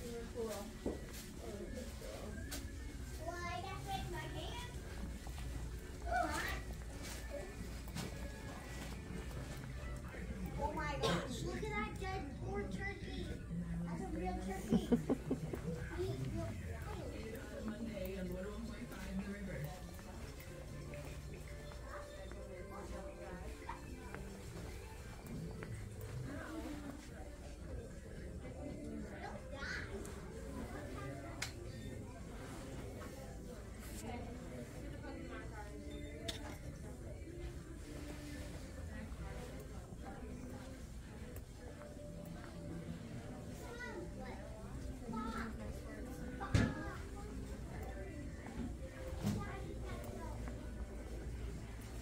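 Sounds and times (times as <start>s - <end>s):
distant voices of shoppers: 0.0s - 52.0s
faint background music: 0.0s - 52.0s.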